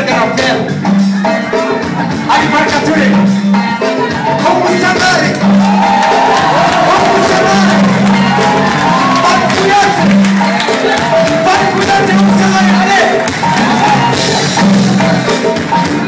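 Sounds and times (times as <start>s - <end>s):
crowd: 0.0s - 16.0s
drums and percussion: 0.0s - 16.0s
live band playing: 0.0s - 16.0s.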